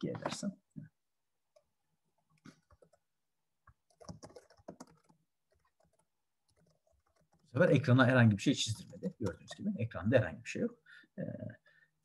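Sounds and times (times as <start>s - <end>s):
computer keyboard typing: 2.4s - 3.0s, 3.7s - 7.9s.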